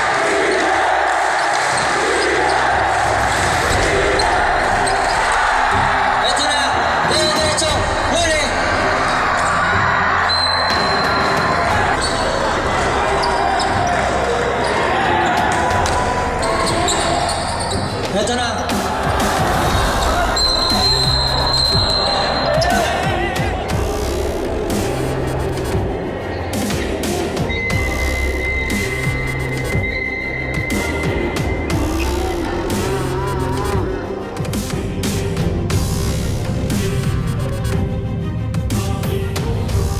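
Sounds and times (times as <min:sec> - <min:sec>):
crowd chatter in echoing gym: 0:00.0 - 0:36.4
music playing: 0:00.0 - 0:39.9.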